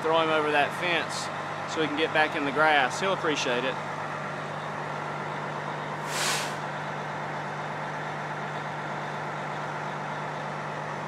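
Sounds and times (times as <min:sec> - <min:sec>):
short burst of hiss: 0:06.0 - 0:06.6.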